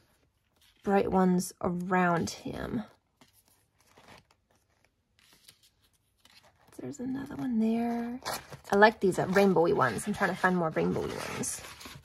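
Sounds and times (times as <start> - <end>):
sticker sheet rustling and peeling: 3.2 - 12.0.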